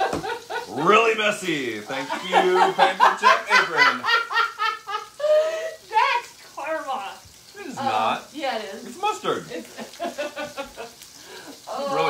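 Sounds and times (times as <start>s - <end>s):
people talking: 0.7s - 4.2s, 5.9s - 9.7s, 11.7s - 12.0s.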